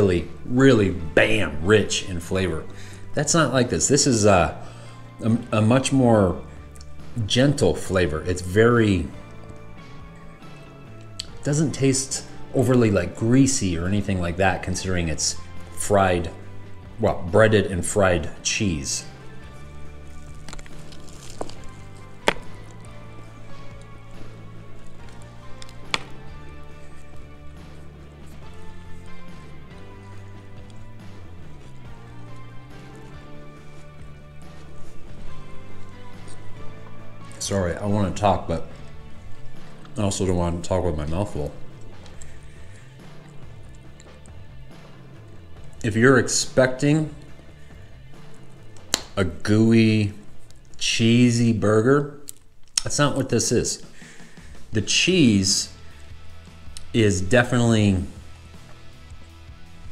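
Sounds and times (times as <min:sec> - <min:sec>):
soft background music: 0:00.0 - 0:59.9
biting and chewing burger: 0:09.1 - 0:11.4, 0:19.2 - 0:37.4, 0:41.6 - 0:45.8, 0:50.1 - 0:50.8
mouth click: 0:11.1 - 0:11.4.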